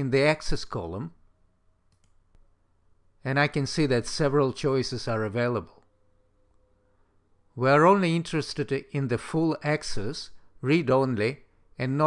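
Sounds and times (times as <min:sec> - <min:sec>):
faint mouse clicks: 0:01.9 - 0:02.5.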